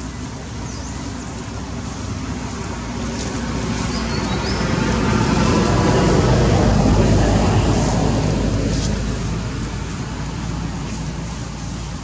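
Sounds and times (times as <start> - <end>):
motor vehicle passing: 1.6 - 12.0.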